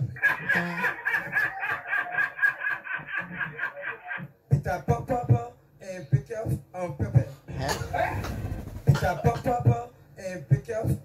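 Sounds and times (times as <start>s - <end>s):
man laughing: 0.0s - 4.3s, 8.9s - 9.6s.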